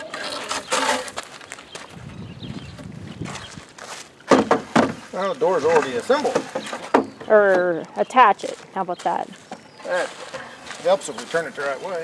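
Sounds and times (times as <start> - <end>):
boards being handled: 0.0 - 1.9, 2.7 - 7.8
footsteps on dirt and gravel: 0.0 - 12.0
sharp knocks of lumber: 4.2 - 7.4.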